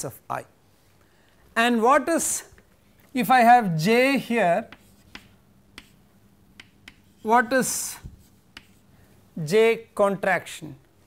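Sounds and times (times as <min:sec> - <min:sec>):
chalk tapping on blackboard: 0:04.6 - 0:08.9.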